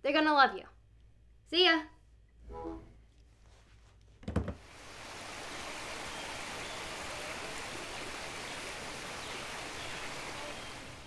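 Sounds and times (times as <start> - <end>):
running water rushing: 4.6 - 11.0.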